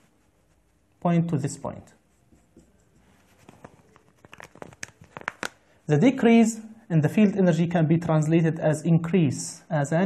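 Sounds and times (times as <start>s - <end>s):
marker scratching on whiteboard: 0.0s - 4.1s.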